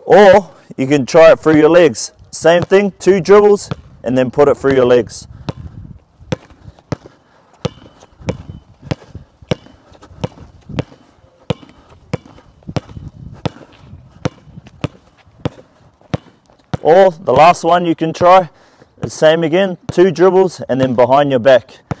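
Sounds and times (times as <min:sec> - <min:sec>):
basketball bouncing on hard court: 0:01.3 - 0:04.0, 0:04.6 - 0:17.6.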